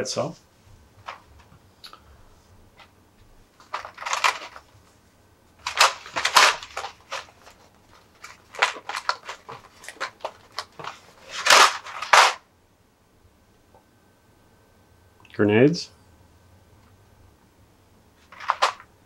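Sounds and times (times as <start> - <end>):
plastic blister tray crackling: 3.6 - 4.8, 5.6 - 12.4, 18.2 - 18.9.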